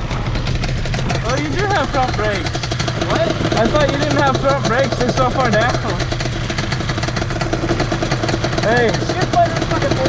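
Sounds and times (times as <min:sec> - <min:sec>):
atv engines running: 0:00.0 - 0:10.0.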